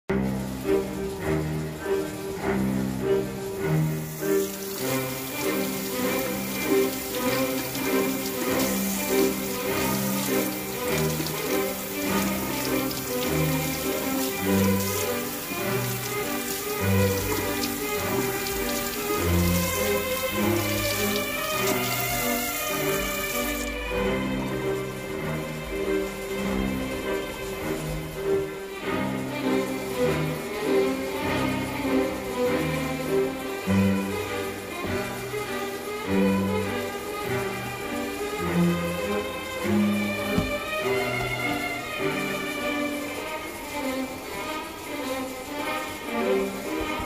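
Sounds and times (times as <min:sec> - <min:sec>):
background music: 0:00.1 - 0:47.0
tap running into sink: 0:40.0 - 0:41.6.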